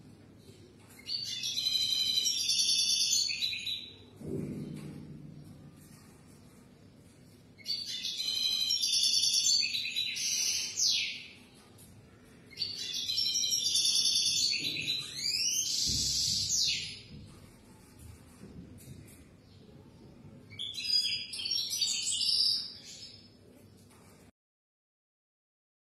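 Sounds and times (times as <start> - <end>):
bird twittering song: 0.9 - 4.2, 12.5 - 17.2, 19.1 - 23.3.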